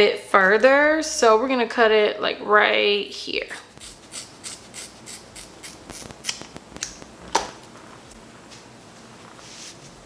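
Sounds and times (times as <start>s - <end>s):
shears snipping hair: 3.6s - 7.1s.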